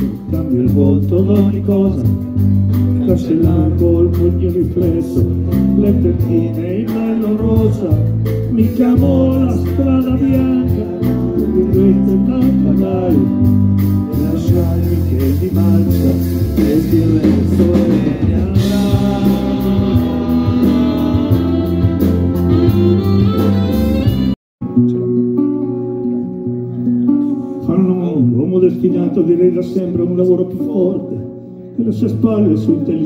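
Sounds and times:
live band playing: 0.0s - 33.0s.

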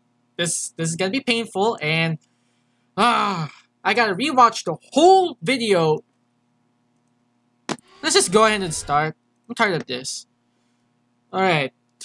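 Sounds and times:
faint room hum: 0.0s - 12.0s
man talking: 0.4s - 2.2s, 3.0s - 6.0s, 8.0s - 10.2s, 11.4s - 11.7s.

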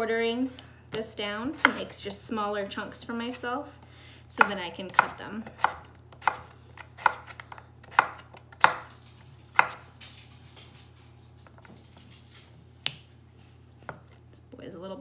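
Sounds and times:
knife chopping on wooden board: 4.4s - 8.9s, 9.6s - 9.8s.

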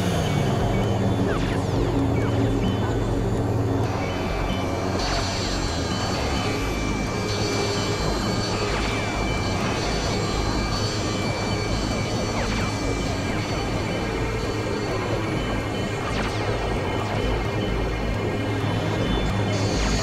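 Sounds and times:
synthesizer noise drone music: 0.0s - 20.0s.

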